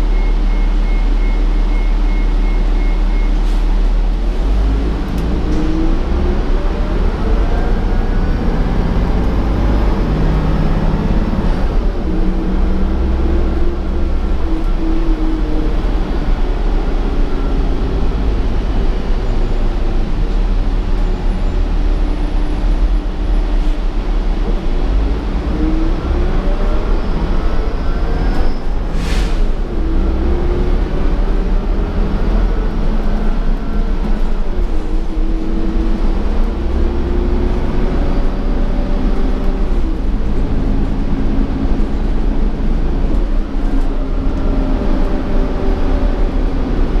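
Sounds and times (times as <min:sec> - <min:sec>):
bus road rumble: 0:00.0 - 0:47.0.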